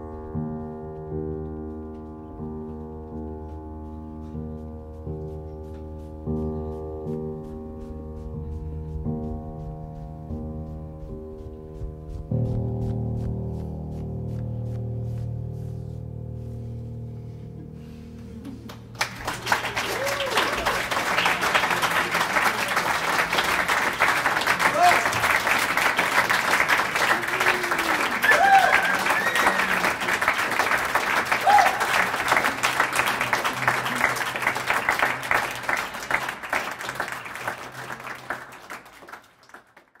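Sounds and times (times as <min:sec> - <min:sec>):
audience applause: 0:18.7 - 0:40.0
audience cheering: 0:19.0 - 0:39.1.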